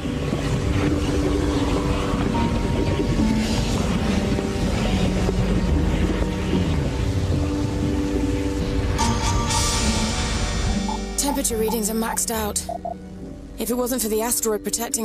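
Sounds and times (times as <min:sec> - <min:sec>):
rushing noise with deep rumble: 0:00.0 - 0:09.0
orchestral music: 0:07.9 - 0:13.6.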